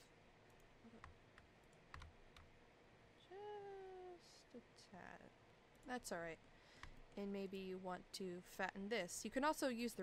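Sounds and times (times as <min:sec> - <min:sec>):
keyboard and mouse clicks: 0:00.5 - 0:02.5, 0:06.8 - 0:07.2.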